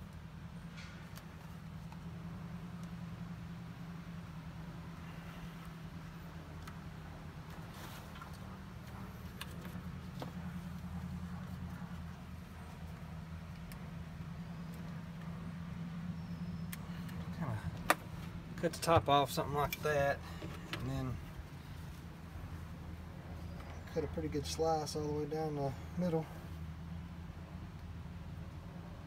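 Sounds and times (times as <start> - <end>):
low mechanical hum: 0.0 - 29.0.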